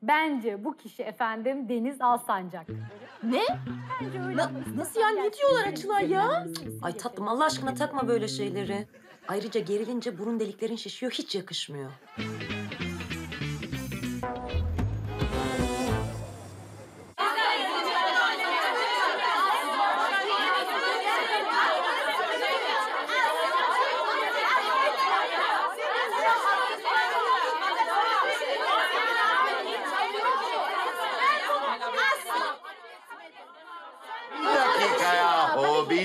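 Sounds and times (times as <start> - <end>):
women talking and shouting: 3.0 - 12.2
single voice talking: 3.4 - 8.8.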